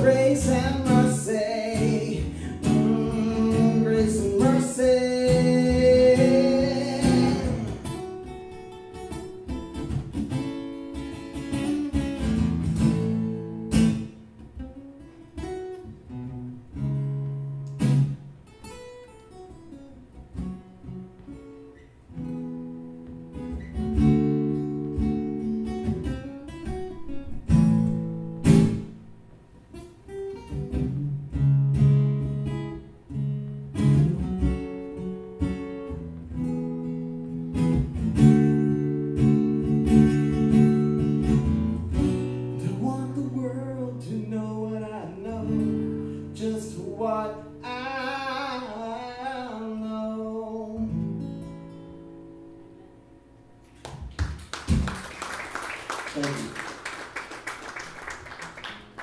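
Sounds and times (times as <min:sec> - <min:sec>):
blues acoustic guitar music: 0:00.0 - 0:59.0.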